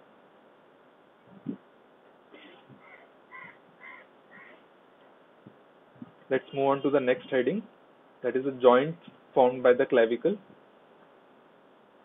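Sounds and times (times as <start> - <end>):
bird calling faintly: 2.4 - 4.7.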